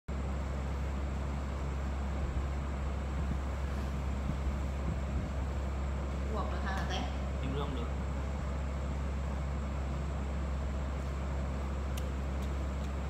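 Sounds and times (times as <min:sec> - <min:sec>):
low background hum: 0:00.1 - 0:13.0.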